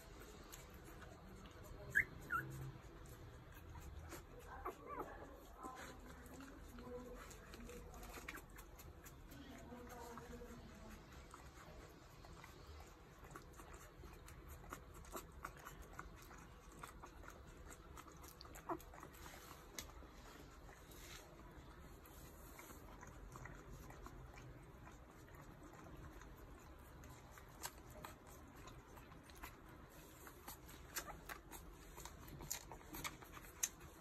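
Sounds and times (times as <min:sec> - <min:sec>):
puppies suckling wet clicks: 0:00.0 - 0:34.0
puppies whimpering: 0:01.0 - 0:08.6
puppy squeak: 0:01.7 - 0:02.7.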